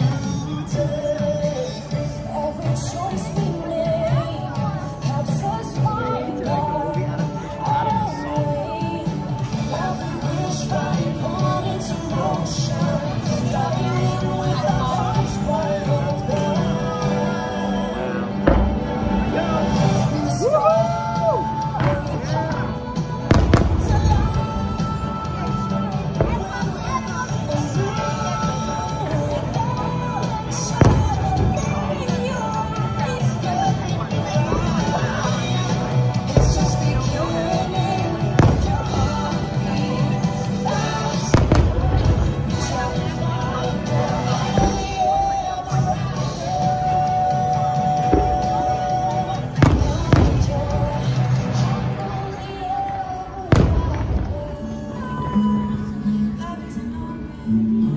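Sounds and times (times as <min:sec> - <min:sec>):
music playing: 0:00.0 - 0:57.9
distant fireworks bursting: 0:18.4 - 0:20.1, 0:23.2 - 0:25.4, 0:30.8 - 0:32.8, 0:38.2 - 0:39.7, 0:41.2 - 0:42.8, 0:49.5 - 0:51.3, 0:53.5 - 0:55.2.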